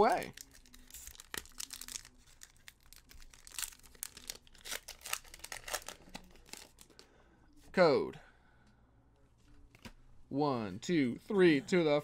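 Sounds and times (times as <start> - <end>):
foil wrapper crinkling and tearing: 0.0 - 7.0.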